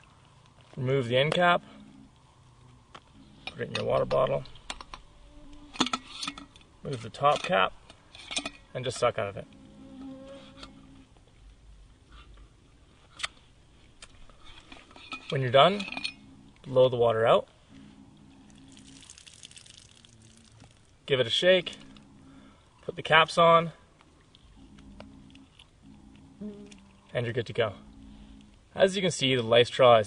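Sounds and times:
low steady buzz: 0:00.0 - 0:30.0
water spattering and dripping: 0:18.7 - 0:21.0.

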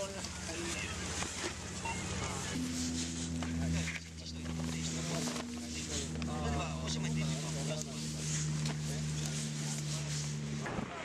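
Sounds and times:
engine idling hum: 0:00.0 - 0:11.0
voices talking: 0:00.0 - 0:11.0.

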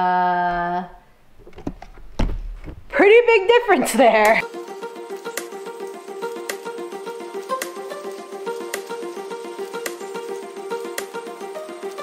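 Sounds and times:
dull thump: 0:01.4 - 0:03.0.

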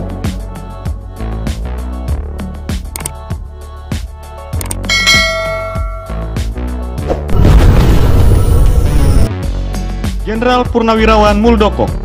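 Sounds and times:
background music with beat: 0:00.0 - 0:07.3
notification bell ding: 0:04.8 - 0:06.4.

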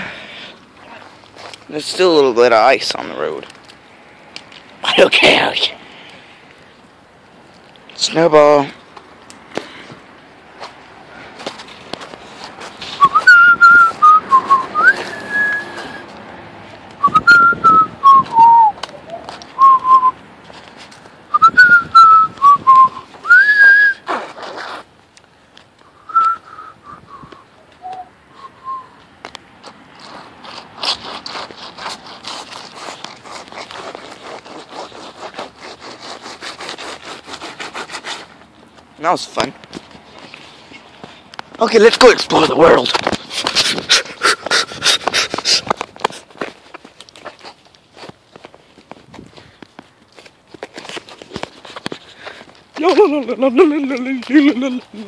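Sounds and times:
quick footsteps: 0:08.8 - 0:26.3, 0:28.6 - 0:53.3
person whistling a tune: 0:13.0 - 0:16.0, 0:17.0 - 0:18.8, 0:19.6 - 0:20.2, 0:21.3 - 0:24.0, 0:26.0 - 0:29.0.

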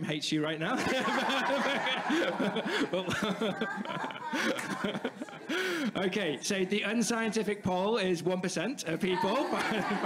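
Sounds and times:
people laughing: 0:00.7 - 0:07.5, 0:09.1 - 0:10.0.

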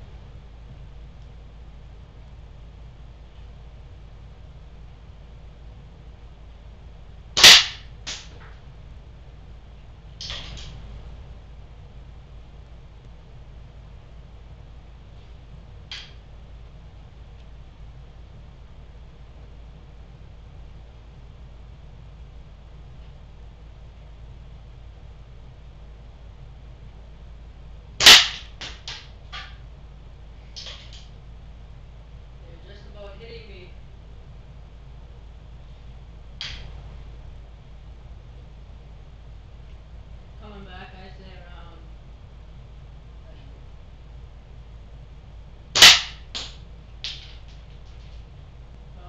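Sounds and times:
air gun firing: 0:07.4 - 0:08.3, 0:28.0 - 0:29.5, 0:45.8 - 0:46.6.

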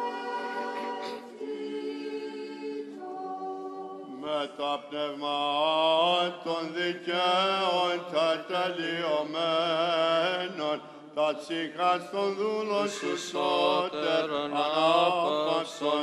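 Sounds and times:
unaccompanied church chanting: 0:00.0 - 0:16.0.

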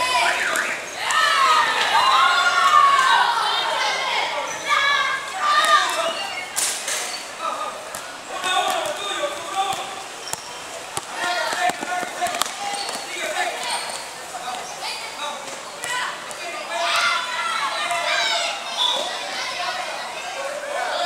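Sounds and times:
voices of children and spectators: 0:00.0 - 0:21.0.

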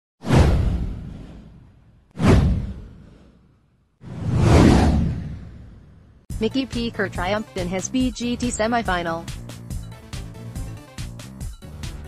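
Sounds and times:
whoosh with deep boom: 0:00.2 - 0:06.3.

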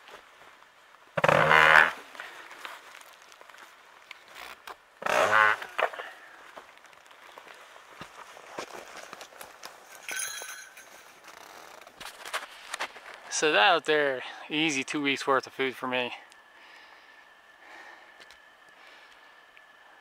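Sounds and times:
rope creaking over tree branch: 0:01.2 - 0:10.0, 0:11.0 - 0:13.4.

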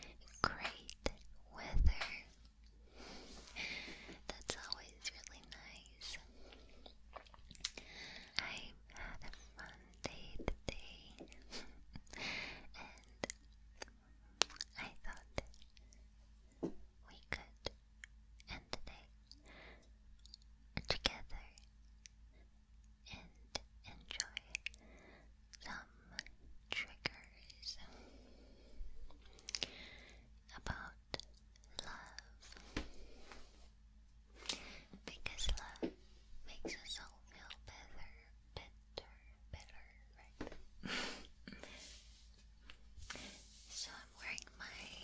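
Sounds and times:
soft close whispering: 0:00.0 - 0:02.4, 0:03.2 - 0:17.8, 0:18.4 - 0:22.4, 0:23.0 - 0:33.7, 0:34.4 - 0:45.0
wet mouth clicks: 0:07.1 - 0:07.8, 0:13.0 - 0:15.9, 0:20.2 - 0:22.2, 0:24.2 - 0:24.8, 0:29.4 - 0:29.7.

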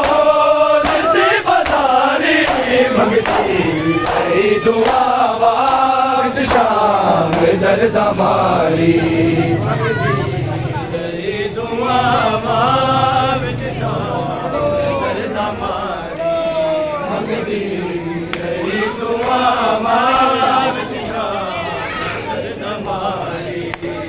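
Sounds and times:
hands slapping bare chests: 0:00.0 - 0:07.6
men chanting a lament: 0:00.0 - 0:24.0.

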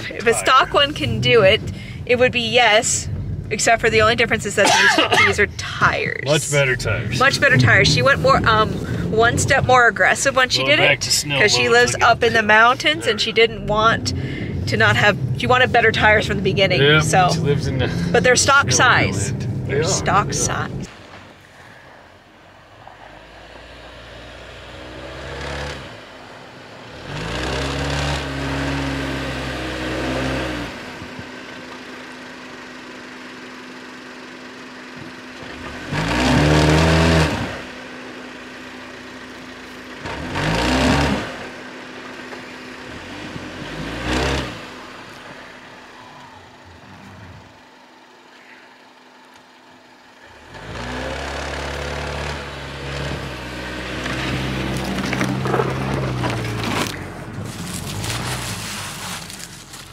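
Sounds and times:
car engine revving in snow: 0:00.0 - 0:59.9.

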